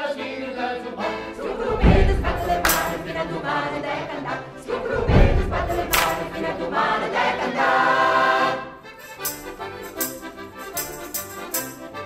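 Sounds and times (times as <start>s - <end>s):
choir singing: 0.0s - 10.1s
heavy low thump: 1.4s - 3.7s, 4.6s - 6.7s.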